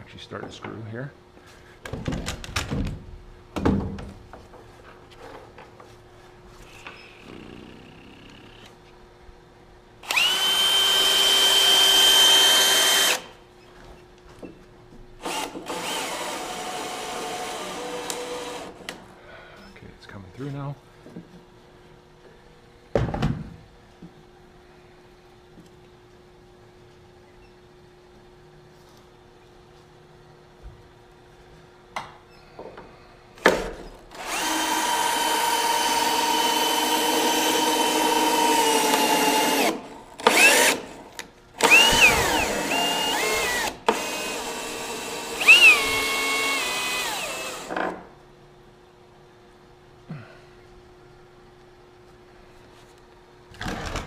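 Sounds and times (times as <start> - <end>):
power drill driving a screw: 10.0 - 13.3, 15.2 - 18.8, 34.1 - 41.0, 41.6 - 47.8.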